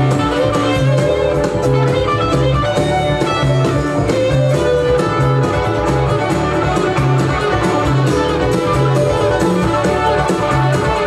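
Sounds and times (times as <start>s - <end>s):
drum kit beat: 0.0s - 11.0s.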